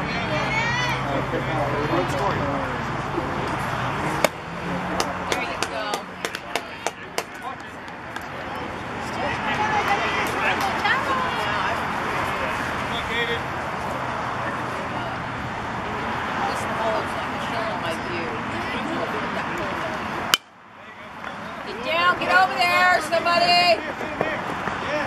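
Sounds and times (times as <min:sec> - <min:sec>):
spectators talking and calling out: 0:00.0 - 0:25.0
hand claps: 0:05.0 - 0:08.3.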